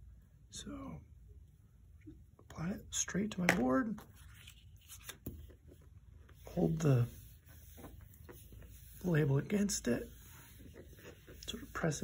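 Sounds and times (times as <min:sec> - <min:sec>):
paper rustling: 0:04.0 - 0:12.0.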